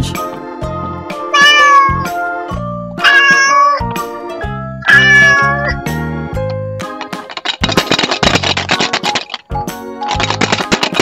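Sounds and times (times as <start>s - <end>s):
boogie-woogie music: 0.0s - 11.0s
cat meowing: 1.3s - 2.1s, 3.0s - 3.9s, 4.8s - 5.8s.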